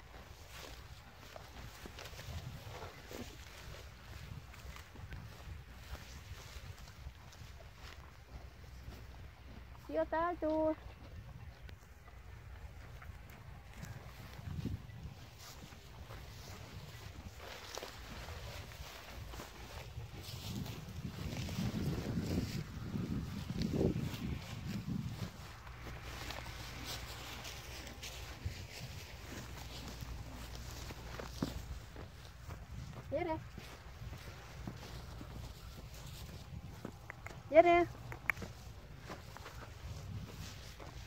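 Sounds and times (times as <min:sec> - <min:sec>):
horse tearing grass: 0:00.0 - 0:04.5, 0:15.3 - 0:32.9
footsteps on dirt track: 0:00.0 - 0:41.0
soft snaps: 0:38.0 - 0:38.5.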